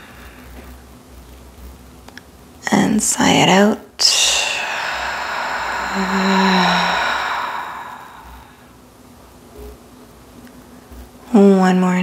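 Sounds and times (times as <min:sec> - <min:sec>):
woman humming low: 0:04.0 - 0:08.6
woman sighing exhale: 0:04.0 - 0:08.7.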